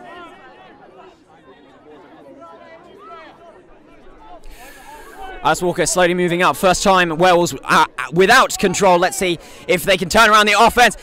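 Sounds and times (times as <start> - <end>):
scattered chatter: 0.0 - 11.0
distant players shouting: 4.7 - 11.0.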